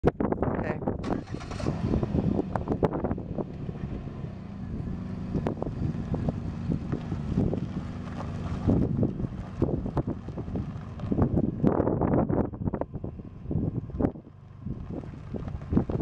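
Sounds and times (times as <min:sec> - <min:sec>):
wind buffeting microphone: 0:00.0 - 0:16.0
car engine running: 0:01.0 - 0:16.0.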